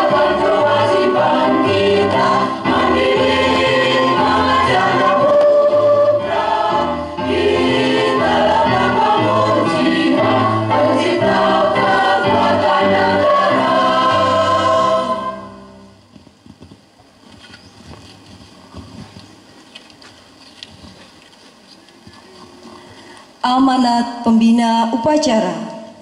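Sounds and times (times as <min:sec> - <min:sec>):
choir singing slow song: 0:00.0 - 0:16.0.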